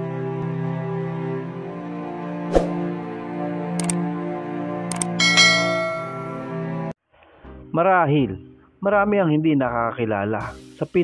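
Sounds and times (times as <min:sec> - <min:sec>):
sustained synthesized chord: 0:00.0 - 0:06.9
sharp clicks: 0:03.8 - 0:04.0, 0:04.9 - 0:05.2
bright bell-like chime: 0:05.2 - 0:06.6.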